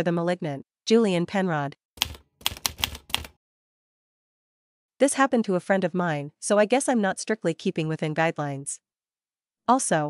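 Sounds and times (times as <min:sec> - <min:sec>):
keyboard keys clacking: 0:02.0 - 0:03.3.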